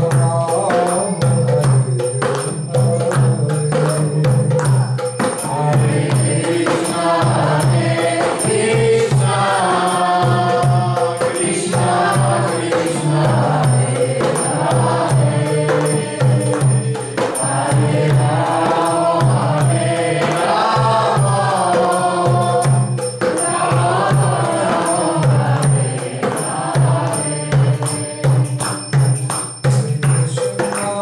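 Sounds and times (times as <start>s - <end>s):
voices chanting a hymn: 0.0s - 29.0s
percussion steady beat: 0.0s - 31.0s.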